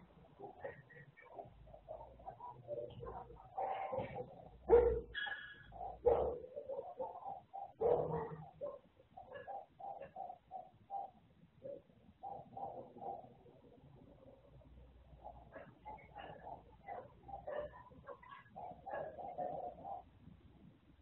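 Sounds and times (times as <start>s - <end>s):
animal calls: 0.0s - 20.2s.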